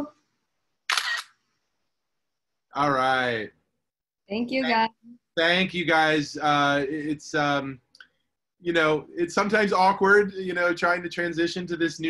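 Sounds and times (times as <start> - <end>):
camera shutter click: 0.9 - 1.3.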